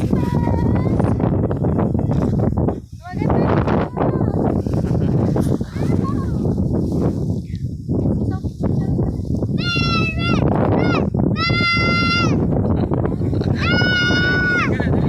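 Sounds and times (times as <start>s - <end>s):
wind rumble on microphone: 0.0s - 15.0s
child squealing: 13.6s - 14.7s.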